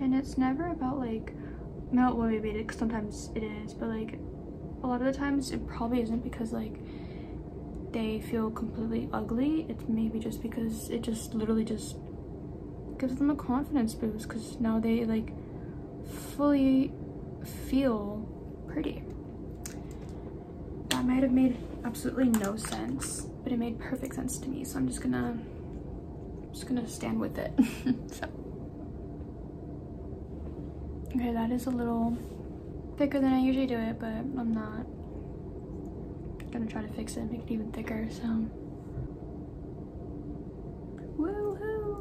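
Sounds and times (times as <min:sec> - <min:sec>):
faint constant tone: 0:00.0 - 0:42.0
low steady hum: 0:00.0 - 0:42.0.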